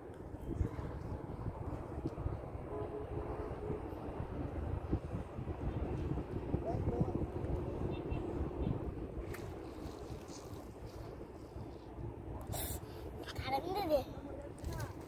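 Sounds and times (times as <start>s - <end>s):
wind rumbling on microphone: 0.0s - 13.2s.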